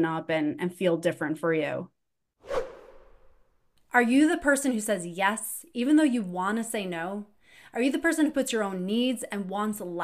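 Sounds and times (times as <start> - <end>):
whoosh transition effect: 2.4 - 3.5.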